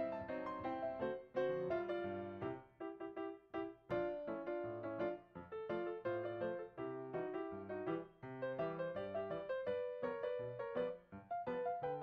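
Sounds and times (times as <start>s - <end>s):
light piano melody: 0.0s - 12.0s.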